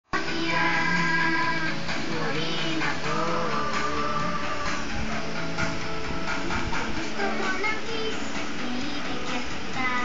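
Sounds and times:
music from television: 0.0 - 10.0.

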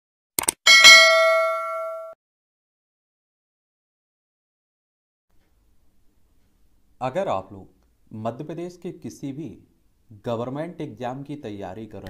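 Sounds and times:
bright bell ding: 0.7 - 2.2.

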